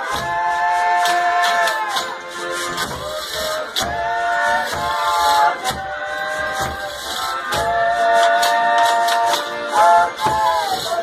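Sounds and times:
men singing in harmony: 0.0s - 2.0s, 2.6s - 11.0s
accordion: 0.0s - 11.0s
acoustic guitars: 0.0s - 11.0s
percussion strokes: 0.0s - 11.0s.

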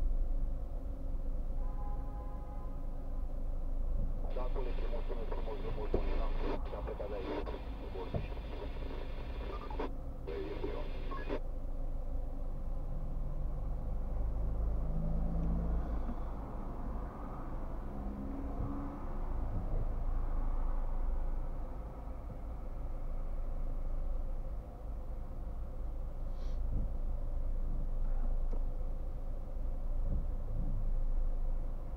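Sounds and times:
car cabin idling rumble: 4.3s - 11.4s
stack of steady tones: 4.3s - 11.4s.

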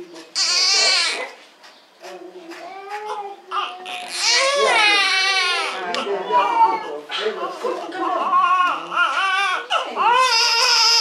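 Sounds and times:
infant crying: 0.4s - 1.4s, 2.7s - 7.0s, 8.2s - 11.0s.

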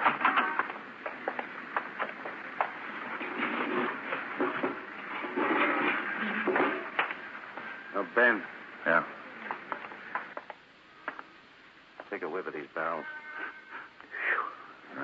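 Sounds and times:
scraping and shuffling: 0.0s - 11.3s.

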